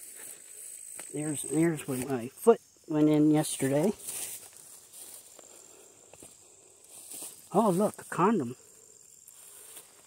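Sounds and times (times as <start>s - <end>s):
footsteps through grass: 0.0s - 10.0s.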